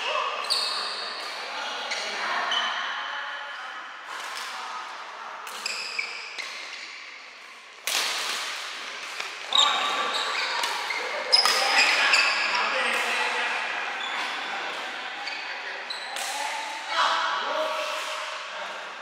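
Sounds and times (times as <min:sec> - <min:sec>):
shoes squeaking on court: 0:00.4 - 0:02.7, 0:09.5 - 0:13.1, 0:13.9 - 0:16.2.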